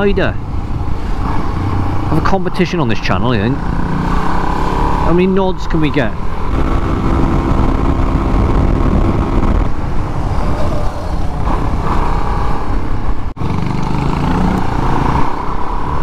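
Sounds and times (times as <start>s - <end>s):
wind noise on microphone: 6.2s - 13.4s
motorcycle engine running: 6.3s - 9.7s.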